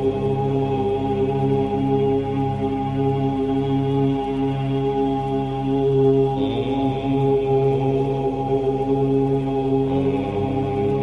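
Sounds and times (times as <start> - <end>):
steady drone: 0.0 - 11.0
voices chanting om: 0.0 - 11.0.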